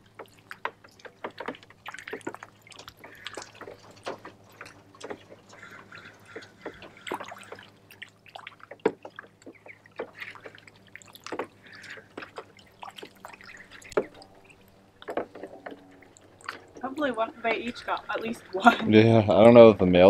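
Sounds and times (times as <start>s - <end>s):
ducks splashing water: 0.0s - 19.6s.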